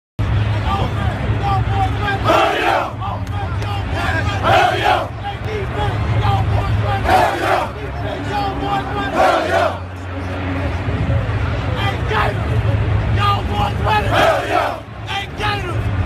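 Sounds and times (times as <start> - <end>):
steady low rumble: 0.2 - 16.0
excited chatter: 0.6 - 10.8, 11.6 - 15.8
team shouting together: 1.4 - 5.1, 5.8 - 9.8, 13.8 - 14.8.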